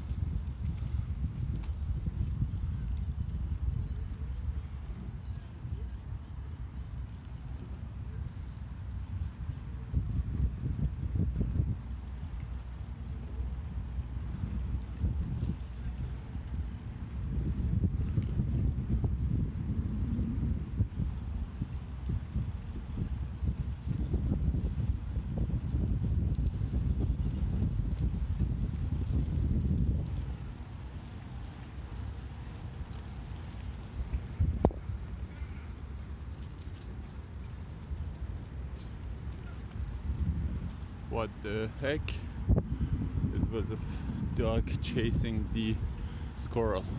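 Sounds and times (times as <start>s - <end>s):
bicycle tyres rolling on pavement: 0.0s - 46.9s
wind buffeting microphone: 0.0s - 46.9s.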